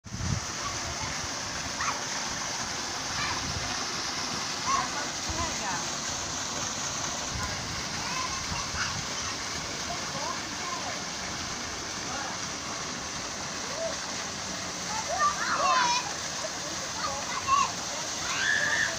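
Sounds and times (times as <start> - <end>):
water pouring from a pipe: 0.0 - 18.9
faint voices: 0.4 - 18.9
people splashing in water: 0.4 - 18.9.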